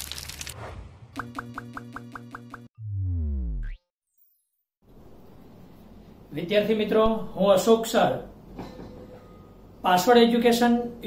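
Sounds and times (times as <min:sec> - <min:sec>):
deep tone sliding down: 0:02.8 - 0:03.8.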